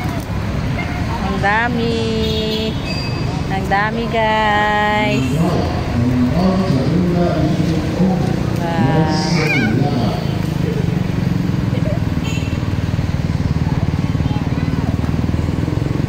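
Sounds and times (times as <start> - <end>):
street background noise: 0.0 - 16.0
voices: 0.0 - 16.0
small engine idling: 9.1 - 16.0.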